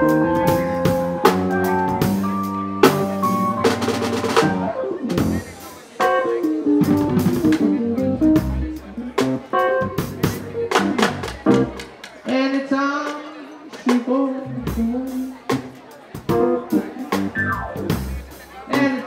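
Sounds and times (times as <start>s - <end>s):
drum kit hits: 0.0s - 11.9s
electric keyboard chords: 0.0s - 12.0s, 16.2s - 19.0s.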